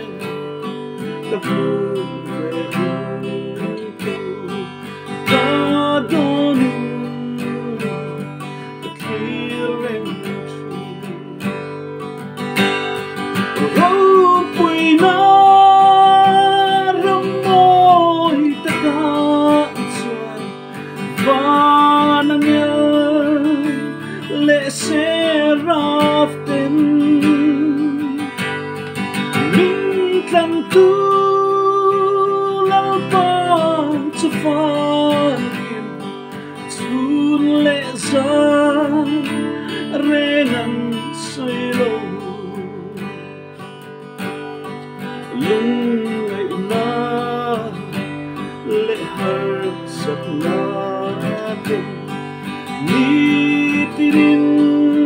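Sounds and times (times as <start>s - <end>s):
acoustic guitar strumming: 0.0s - 55.0s
man singing: 0.0s - 55.0s.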